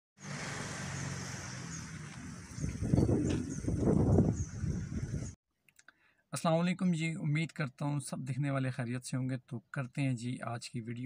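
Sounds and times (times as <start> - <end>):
low engine hum: 0.2 - 5.4
outdoor noise: 0.2 - 11.0.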